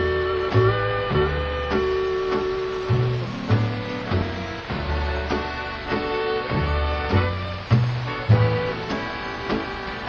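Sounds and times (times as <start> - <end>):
walking bass line: 0.0 - 9.9.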